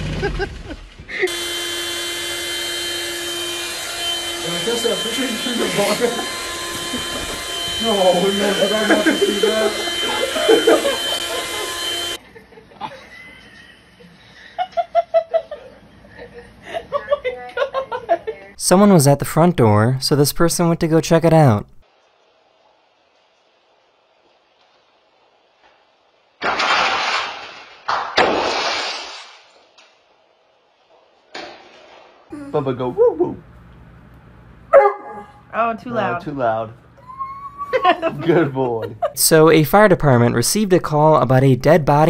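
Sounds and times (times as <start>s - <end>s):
vacuum motor whining: 1.1s - 12.2s
glass fragments scattering on floor: 26.4s - 29.6s
glass pane shattering: 26.4s - 29.6s.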